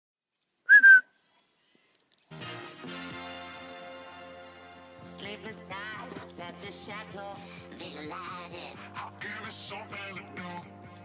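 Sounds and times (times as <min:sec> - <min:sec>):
short high whistle: 0:00.7 - 0:01.1.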